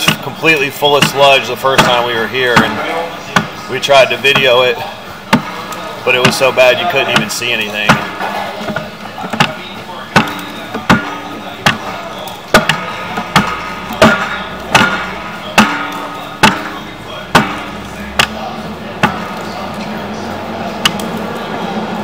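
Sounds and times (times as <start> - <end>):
sharp knocks: 1.0 - 3.6, 5.3 - 19.4.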